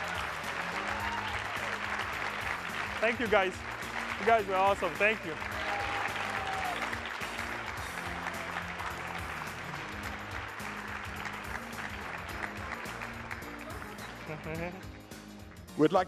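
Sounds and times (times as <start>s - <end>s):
large audience clapping: 0.0s - 16.0s
music playing: 0.0s - 16.0s.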